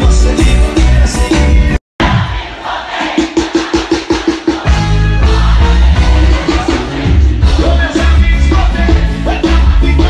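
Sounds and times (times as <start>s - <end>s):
large crowd: 0.0s - 10.0s
loud live band music: 0.0s - 10.0s.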